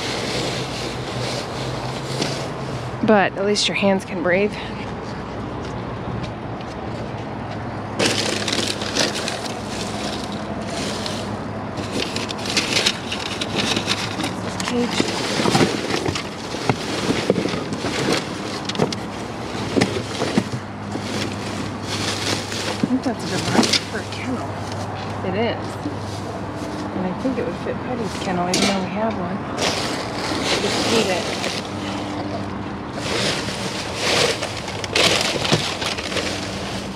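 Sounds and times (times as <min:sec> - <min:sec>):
plastic bags rustling: 0:00.0 - 0:03.2, 0:07.9 - 0:28.8, 0:29.5 - 0:36.9.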